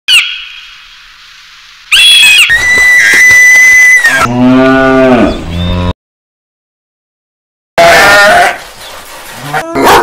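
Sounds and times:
steady high whistle: 0:01.9 - 0:04.0.

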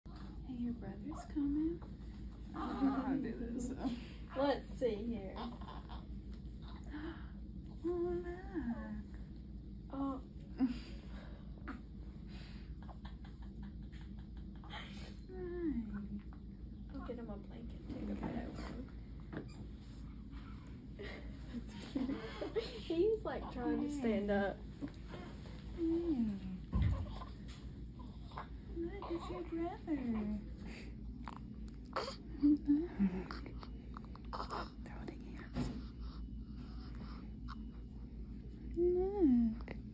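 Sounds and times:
woman humming: 0:25.8 - 0:27.0, 0:32.0 - 0:33.6, 0:38.7 - 0:39.9
person whispering: 0:34.7 - 0:35.7.

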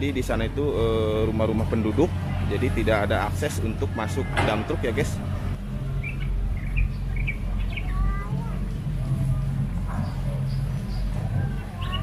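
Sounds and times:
diesel engine droning: 0:00.0 - 0:12.0
small birds chirping: 0:05.9 - 0:12.0.

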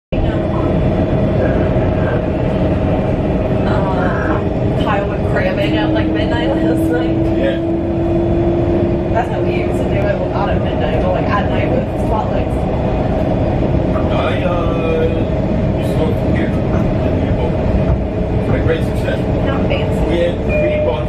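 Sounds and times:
passengers' voices: 0:00.1 - 0:07.9, 0:09.0 - 0:21.0
low tone: 0:00.1 - 0:21.0
rail car running noise: 0:00.1 - 0:21.0
steady hum: 0:00.1 - 0:21.0.

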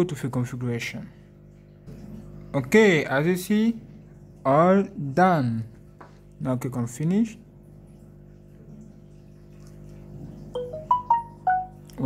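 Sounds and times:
faint steady hum: 0:00.0 - 0:12.0
marimba-like phone jingle: 0:10.6 - 0:11.9.

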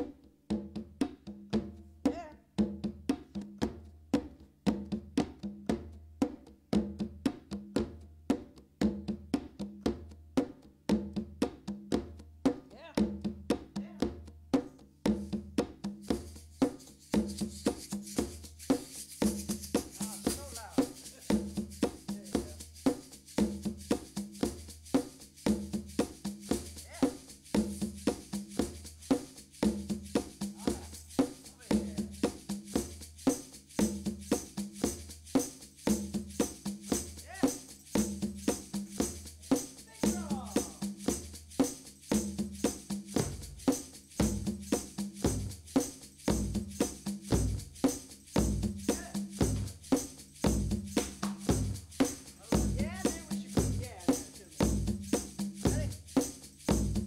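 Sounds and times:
bright shaker layer: 0:15.2 - 0:57.0.

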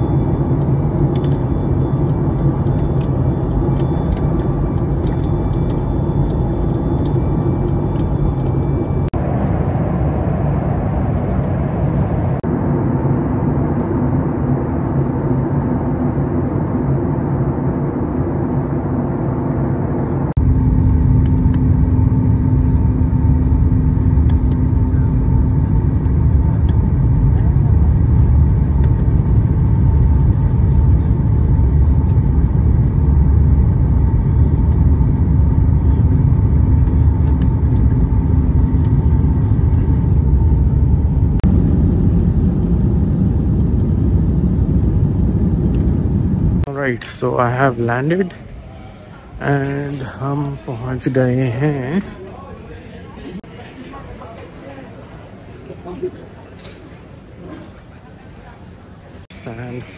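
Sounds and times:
jet engine and airflow roar: 0:00.0 - 0:59.9.

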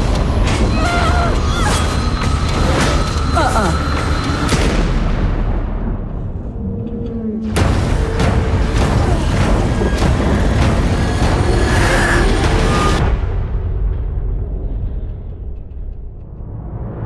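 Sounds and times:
dramatic trailer music: 0:00.0 - 0:17.0.

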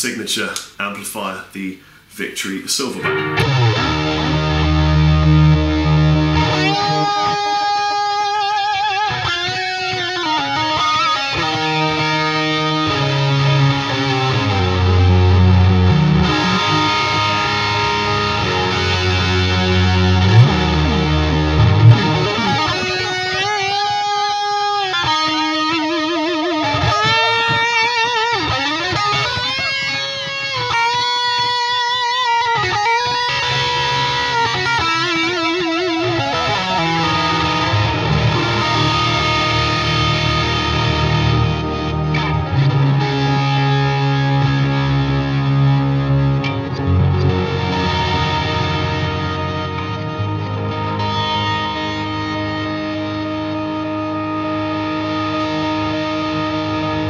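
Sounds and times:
distorted electric guitar: 0:02.8 - 0:57.0.

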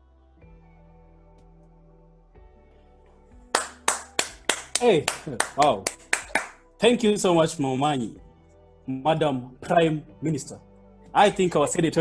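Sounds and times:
person clapping hands: 0:03.5 - 0:06.6.

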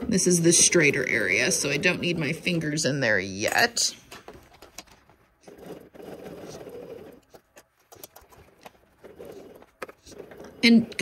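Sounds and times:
sewing machine stitching: 0:05.4 - 0:07.4, 0:08.9 - 0:11.0.

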